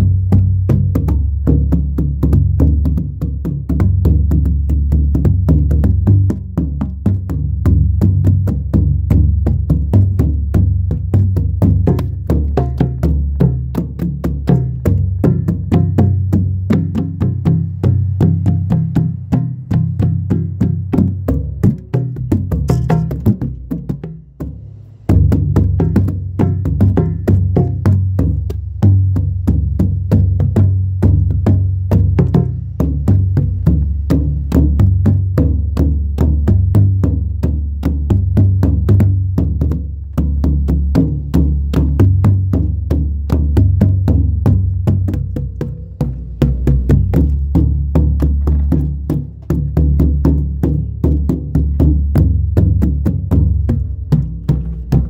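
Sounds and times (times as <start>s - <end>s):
deep bass notes: 0.0s - 55.0s
hand drum played fast: 0.0s - 55.0s.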